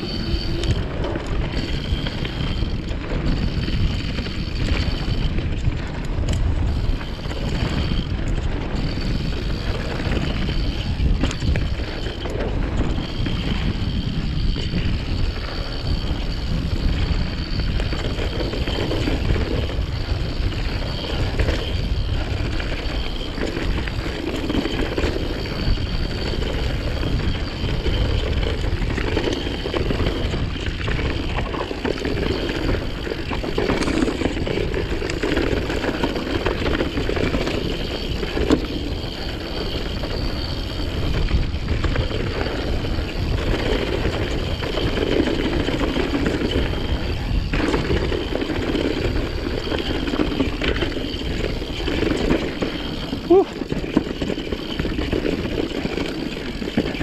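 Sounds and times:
bike knocks and rattles: 0:00.0 - 0:57.0
tyres rolling on dirt and stones: 0:00.0 - 0:57.0
wind on microphone: 0:00.0 - 0:57.0.

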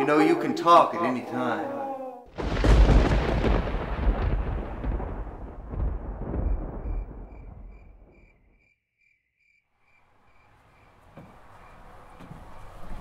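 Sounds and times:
deep rumbling boom: 0:02.3 - 0:08.6
cricket chirping: 0:05.7 - 0:12.4.

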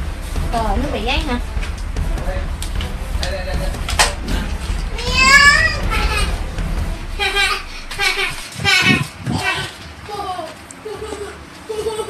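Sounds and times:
steady low hum: 0:00.0 - 0:11.6
voices: 0:00.0 - 0:12.0
child calling out: 0:05.0 - 0:06.3.

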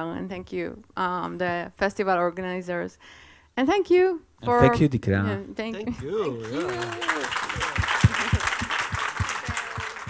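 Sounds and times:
audience applauding: 0:05.9 - 0:10.0
loud nearby claps: 0:06.0 - 0:10.0.

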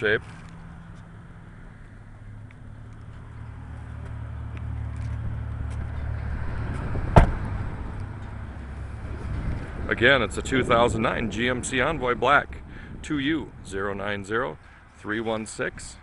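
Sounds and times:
vehicle idling hum: 0:00.0 - 0:15.2.

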